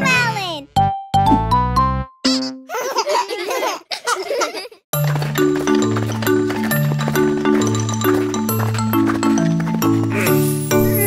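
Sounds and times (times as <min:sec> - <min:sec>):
cartoon voices giggling: 0:02.3 - 0:04.8.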